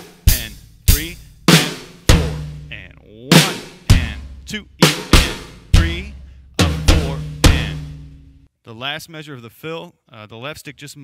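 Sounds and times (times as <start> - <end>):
drum toms struck: 0.0 - 8.5.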